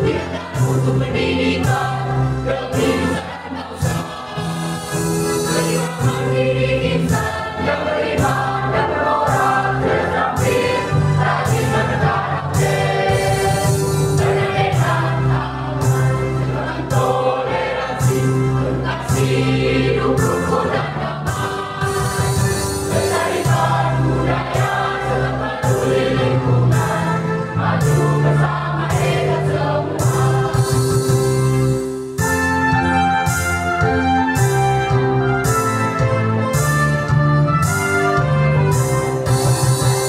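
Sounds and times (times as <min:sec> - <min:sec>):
children's choir singing: 0:00.0 - 0:31.3.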